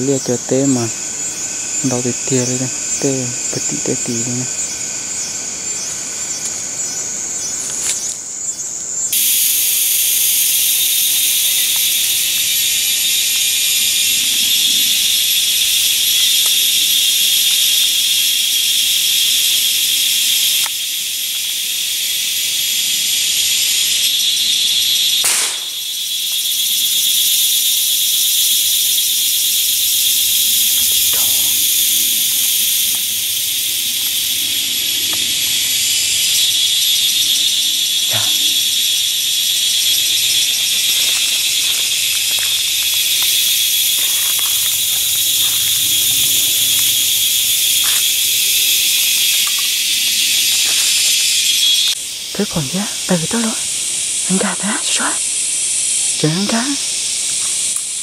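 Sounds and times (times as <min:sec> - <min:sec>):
insects droning: 0:00.0 - 0:58.0
twigs and leaves snapping rustling: 0:07.6 - 0:08.2, 0:40.6 - 0:47.0.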